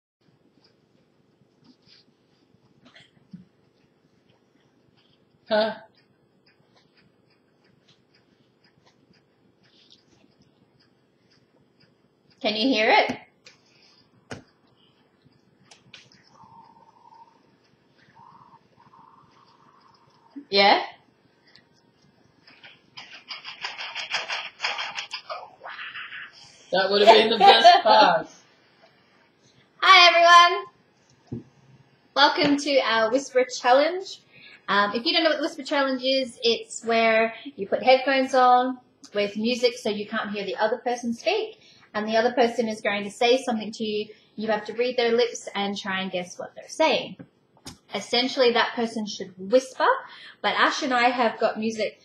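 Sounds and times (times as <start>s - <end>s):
steady low hum: 0.2s - 52.0s
tinny music from headphones: 0.2s - 52.0s.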